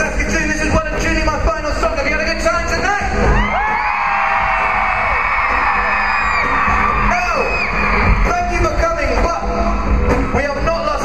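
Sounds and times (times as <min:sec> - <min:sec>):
crowd roar: 0:03.2 - 0:08.4
audience screaming: 0:03.2 - 0:08.7.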